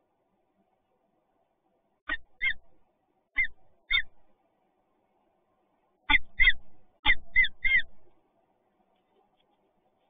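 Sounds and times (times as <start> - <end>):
falcon calling: 2.1 - 2.6, 3.4 - 4.2, 6.1 - 8.0.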